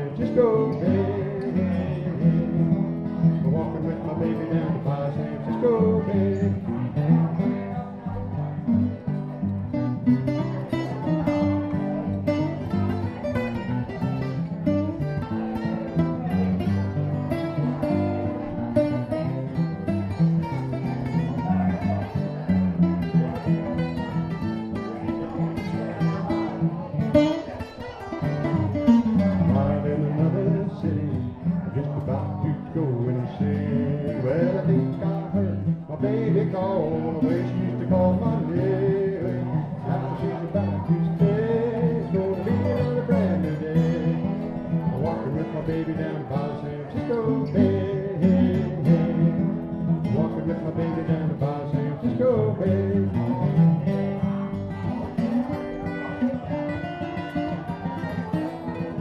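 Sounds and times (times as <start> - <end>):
mandolin: 0.0 - 59.0
strummed guitars: 0.0 - 59.0.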